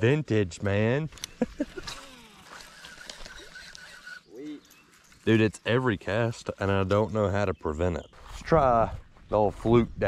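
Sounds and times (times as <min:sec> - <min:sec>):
man laughing: 0:01.2 - 0:04.5.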